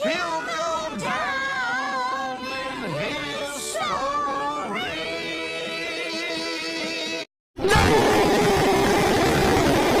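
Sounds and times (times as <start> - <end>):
harsh distorted noise: 7.6 - 10.0.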